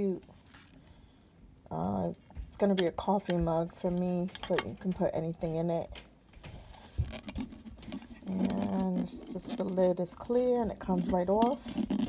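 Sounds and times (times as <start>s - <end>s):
woman speaking: 0.0s - 0.2s, 1.7s - 6.0s, 8.2s - 11.6s.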